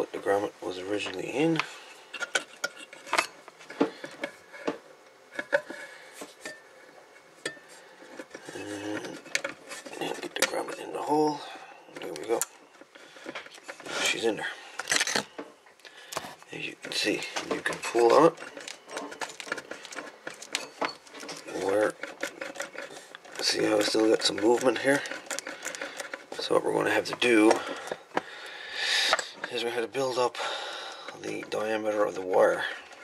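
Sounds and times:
wires clicking and scraping on metal: 0.9 - 33.0.

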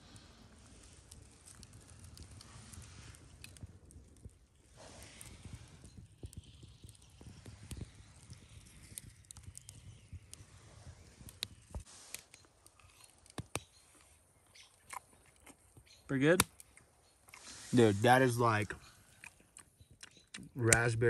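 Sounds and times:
campfire coals crackling: 0.0 - 21.0
sharp pops and clicks: 0.8 - 17.5, 19.0 - 20.9.

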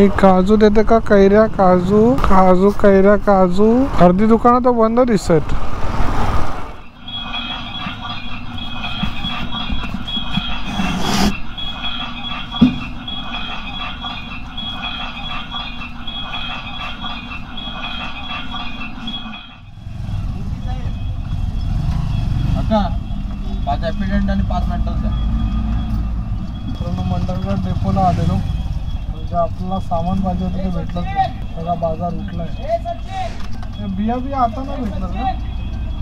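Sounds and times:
vehicle engine running: 7.0 - 36.0
sharp knock: 12.6 - 13.0.

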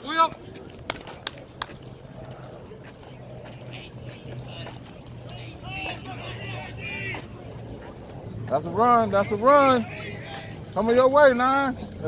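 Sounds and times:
distant voices shouting: 0.0 - 12.0.

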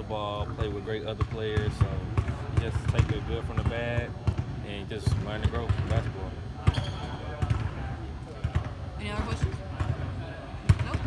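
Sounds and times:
basketballs bouncing on floor: 0.4 - 7.8, 8.4 - 10.1, 10.7 - 11.0.

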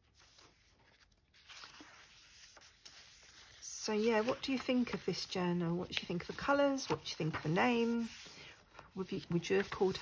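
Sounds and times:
paper pages turning: 0.0 - 10.0.

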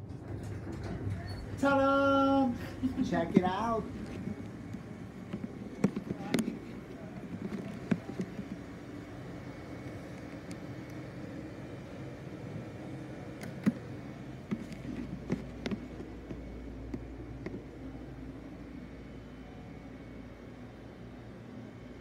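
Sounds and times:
laundry dryers humming: 0.0 - 22.0
faint voices: 0.7 - 21.6.

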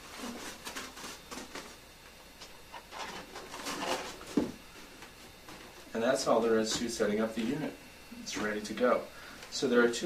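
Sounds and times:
foam lid scraping and rustling: 2.7 - 4.5.

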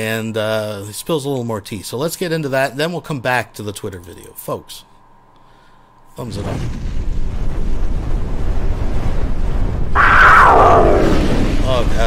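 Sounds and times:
low rumbling sound effect: 7.1 - 12.0.

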